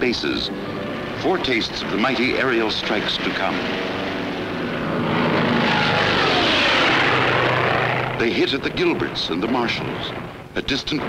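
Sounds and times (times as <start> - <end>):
propeller aircraft engine drone: 0.0 - 11.0.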